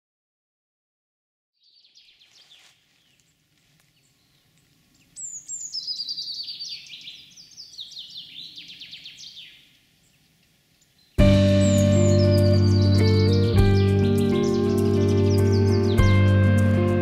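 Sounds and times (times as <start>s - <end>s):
bird chirping: 1.6s - 17.0s
rapid falling bird chirps: 1.7s - 16.8s.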